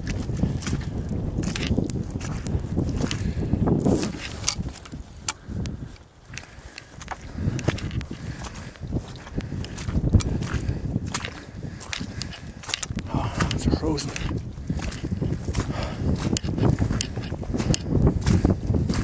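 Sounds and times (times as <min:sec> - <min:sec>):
footsteps in wet grass: 0:00.0 - 0:19.0
low microphone rumble: 0:07.2 - 0:19.0.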